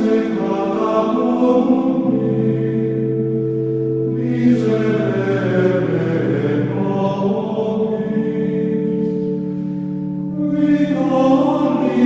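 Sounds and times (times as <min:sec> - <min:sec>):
slow choral singing: 0:00.0 - 0:12.0.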